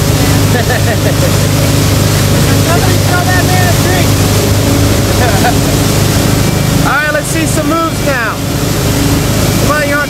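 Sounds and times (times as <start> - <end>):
boat engine humming: 0.0 - 10.0
churning boat wake: 0.0 - 10.0.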